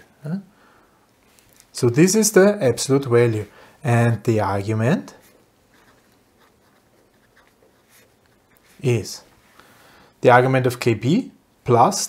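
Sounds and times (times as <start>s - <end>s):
pen scratching on paper: 5.2s - 8.8s.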